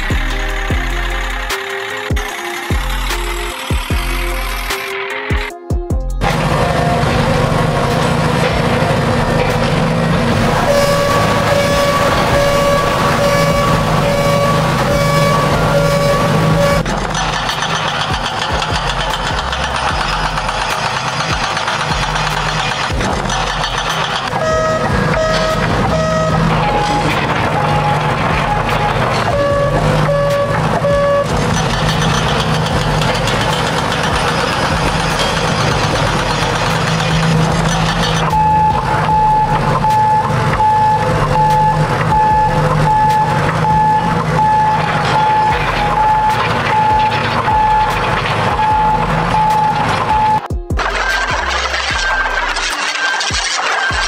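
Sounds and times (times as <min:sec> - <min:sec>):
heavy machine engine running: 0:00.0 - 0:54.0
backup alarm beeping: 0:10.6 - 0:16.8, 0:24.4 - 0:31.3, 0:38.3 - 0:50.5.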